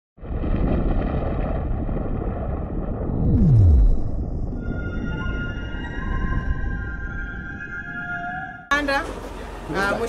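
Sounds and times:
dense low rumble: 0.2 - 6.8.

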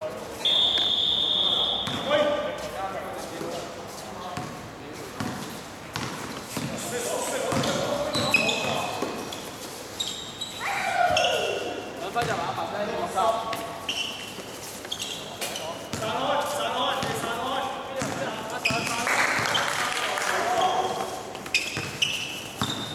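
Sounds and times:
basketball bouncing: 1.8 - 2.1, 6.0 - 6.7, 22.6 - 22.9
players shouting: 10.6 - 11.9.

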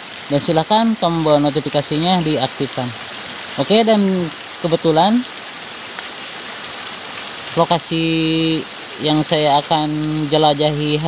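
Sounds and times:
stream flowing over rocks: 0.0 - 11.0.

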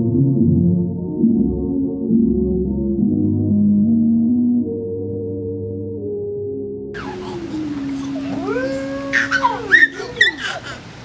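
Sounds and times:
children holding sliding notes: 7.0 - 11.0.

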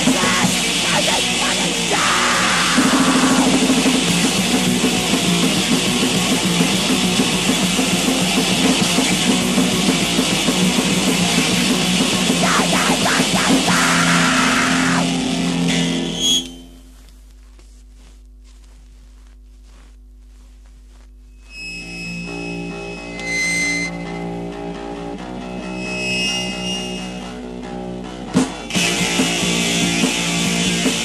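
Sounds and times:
distorted electric guitar punk: 0.0 - 16.9, 21.4 - 31.0.

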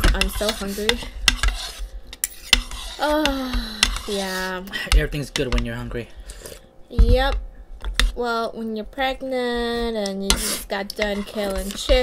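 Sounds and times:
spoons scraping ceramic bowls: 0.0 - 4.6, 10.2 - 12.0.

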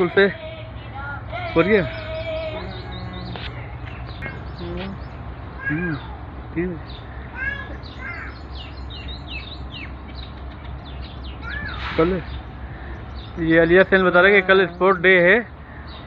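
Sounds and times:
birds chirping: 0.0 - 16.0
steady low hum: 0.0 - 16.0
low bird calls: 0.7 - 16.0.

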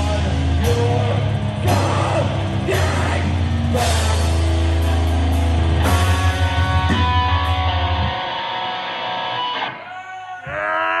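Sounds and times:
electric guitar notes ringing: 3.2 - 9.8.

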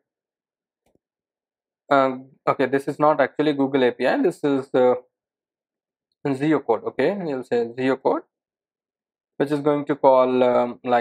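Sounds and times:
man speaking: 1.9 - 5.0, 6.3 - 8.2, 9.4 - 11.0.

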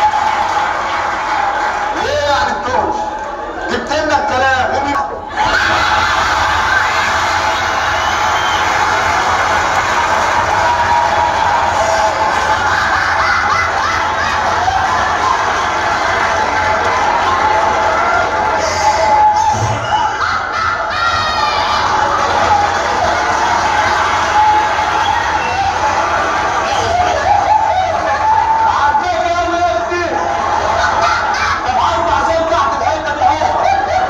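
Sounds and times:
crowd cheering and shouting: 0.0 - 34.0.

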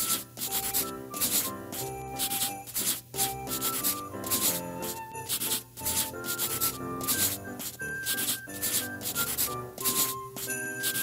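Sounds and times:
instrumental music: 0.0 - 11.0
pen scratching on paper: 0.0 - 11.0.

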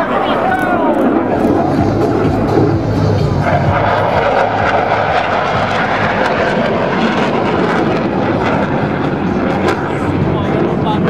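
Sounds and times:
fighter jets flying overhead: 0.0 - 11.0.

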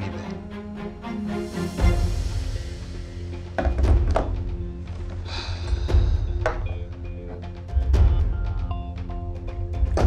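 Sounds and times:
sustained score music tones: 0.0 - 9.9.

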